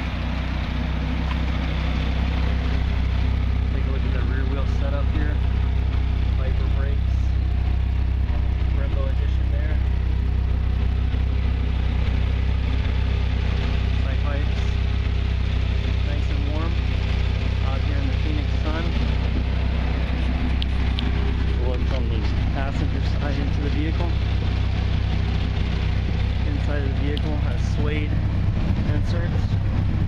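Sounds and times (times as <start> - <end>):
car engine idling: 0.0 - 30.0.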